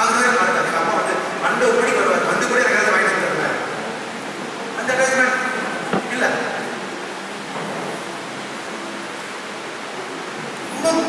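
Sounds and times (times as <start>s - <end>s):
person speaking: 4.8s - 6.6s.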